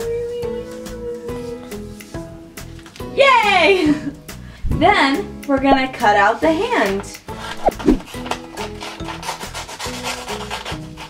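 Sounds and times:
background music: 0:00.0 - 0:11.0
scissors cutting paper: 0:07.5 - 0:11.0.

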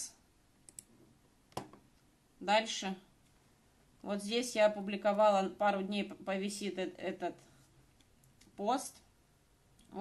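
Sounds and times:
computer mouse clicking: 0:00.6 - 0:00.9.

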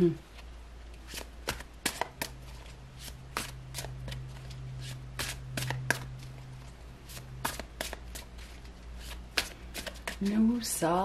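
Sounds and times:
cards being shuffled: 0:00.4 - 0:10.3.

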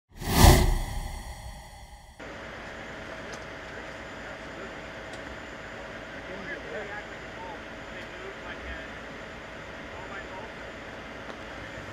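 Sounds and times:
whoosh with deep bass: 0:00.2 - 0:02.2.

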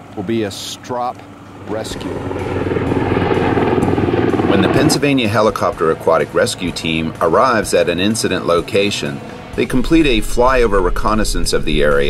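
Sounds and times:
helicopter rotor chopping overhead: 0:00.0 - 0:12.0.

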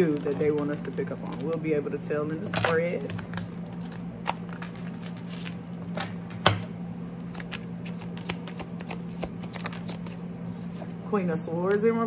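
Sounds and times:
steady low hum: 0:00.0 - 0:12.0
cards shuffling: 0:02.5 - 0:06.4, 0:07.2 - 0:10.9.

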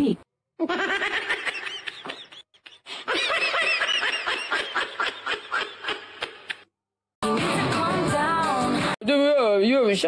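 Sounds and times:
woman laughing hard: 0:00.6 - 0:06.6.

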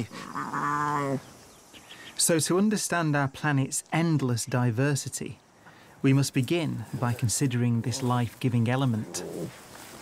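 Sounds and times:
lion cub crying: 0:00.1 - 0:01.2.

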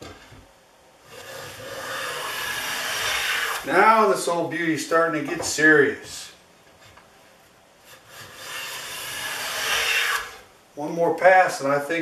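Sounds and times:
hand plane rasping on wood: 0:01.1 - 0:03.6, 0:08.0 - 0:10.4.

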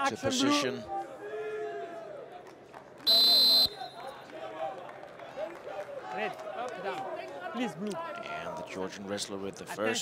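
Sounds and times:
referee's whistle blast: 0:03.1 - 0:04.0.

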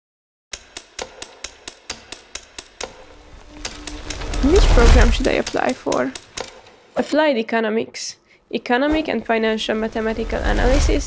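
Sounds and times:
sharp clicks: 0:00.5 - 0:06.7.

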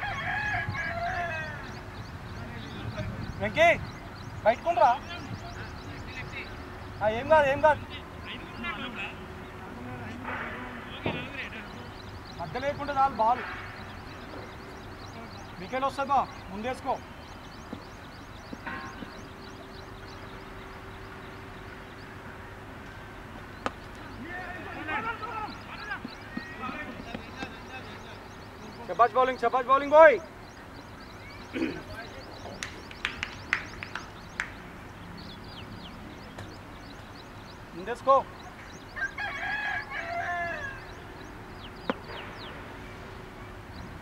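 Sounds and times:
rooster crowing: 0:00.0 - 0:01.8, 0:38.9 - 0:41.0
small birds chirping: 0:00.0 - 0:44.0
voices calling out: 0:00.0 - 0:44.0.

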